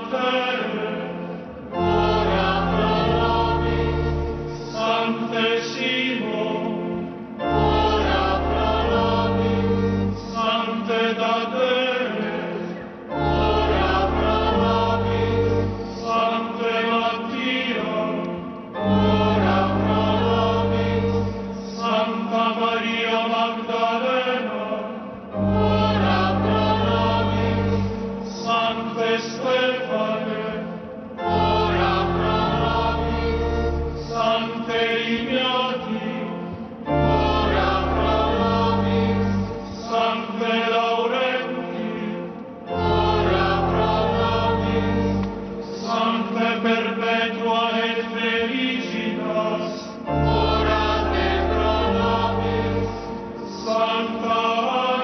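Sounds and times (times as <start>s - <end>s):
low sustained notes: 0.0s - 23.4s, 24.1s - 55.0s
choir singing liturgical music: 0.0s - 55.0s.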